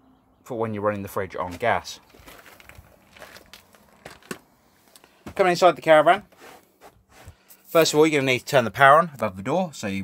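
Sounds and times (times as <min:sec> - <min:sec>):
footsteps on gravel: 0:01.3 - 0:08.0.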